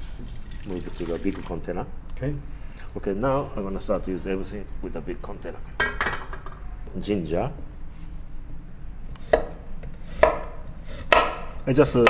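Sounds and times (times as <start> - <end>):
knife chop: 10.2 - 11.5.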